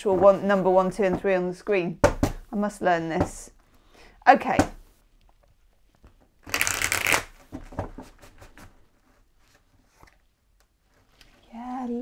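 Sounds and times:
cards riffling: 6.4s - 7.4s.

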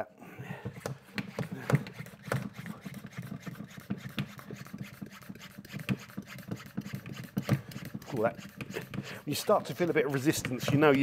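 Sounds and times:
hand pump plunger strokes: 0.6s - 11.0s.

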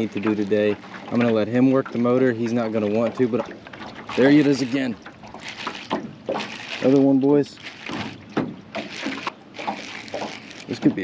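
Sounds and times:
water lapping against boat hull: 0.0s - 11.0s
soft knocks on hull: 7.9s - 11.0s.

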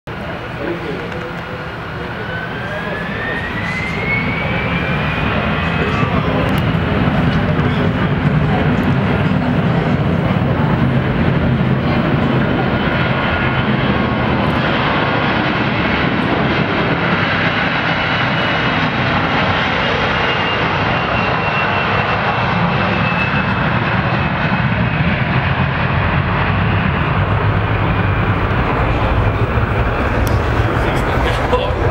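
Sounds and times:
jet engine whine: 0.1s - 31.9s
jet engines roaring: 0.1s - 31.9s.

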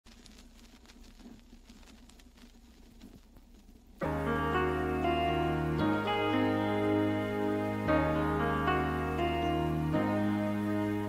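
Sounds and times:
vinyl crackles and clicks: 0.0s - 11.0s.

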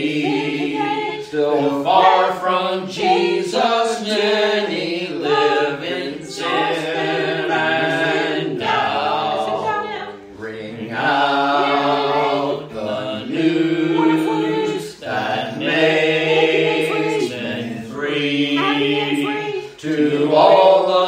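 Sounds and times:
choir singing a hymn unaccompanied: 0.0s - 21.0s.

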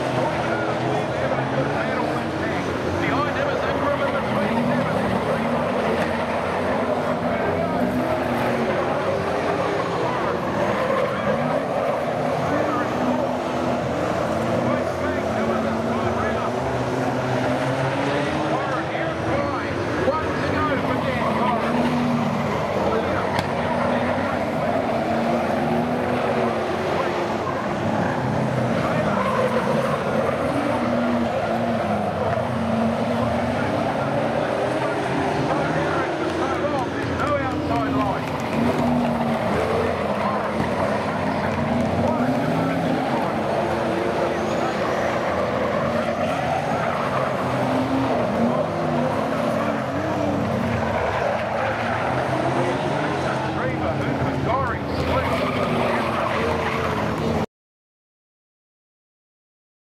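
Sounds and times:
race car engines revving: 0.0s - 57.5s
tyre skid: 0.1s - 57.4s.

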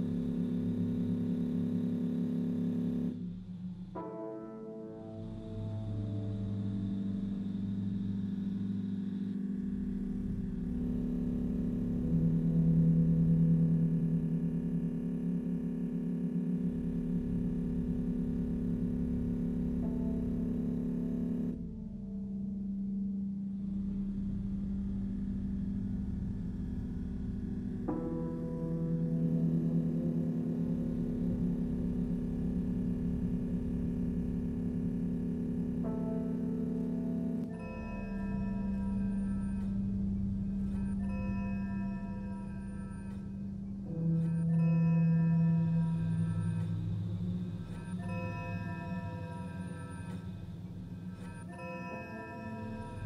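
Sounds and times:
ambient drone music: 0.0s - 53.0s.

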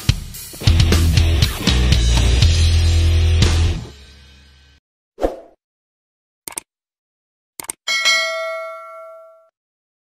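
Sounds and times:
sharp clicks: 6.5s - 6.7s, 7.6s - 7.8s
bright bell ding: 7.9s - 9.5s.

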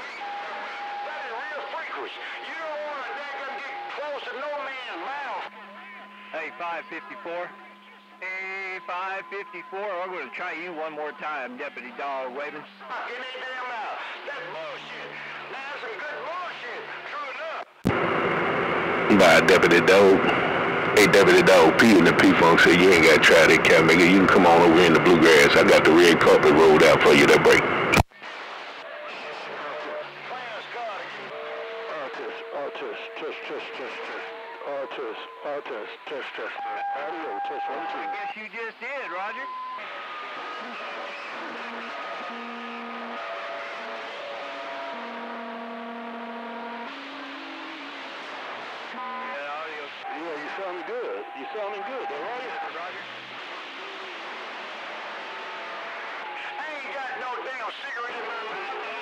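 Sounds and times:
radio static: 11.5s - 59.0s
garbled radio voices: 19.0s - 28.0s, 28.6s - 45.2s, 48.1s - 59.0s.

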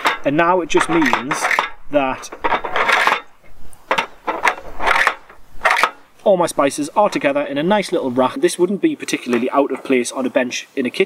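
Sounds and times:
plastic containers clacking: 0.0s - 8.3s
plastic scraping: 0.0s - 8.4s.

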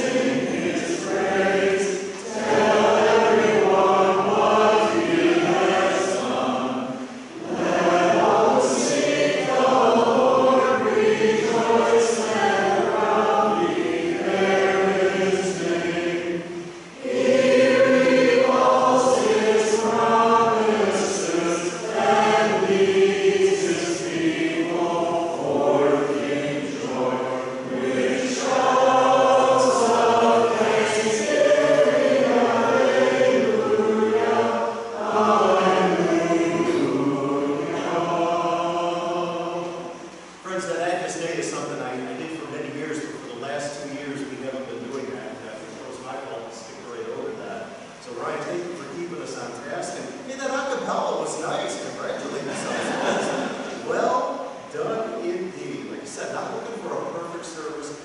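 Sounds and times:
congregation singing in unison: 0.0s - 58.0s.

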